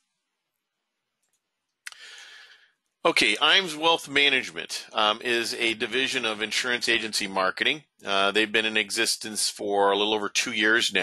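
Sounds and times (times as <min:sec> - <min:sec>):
mouth click: 0:01.2 - 0:02.1
breath intake: 0:01.9 - 0:02.6.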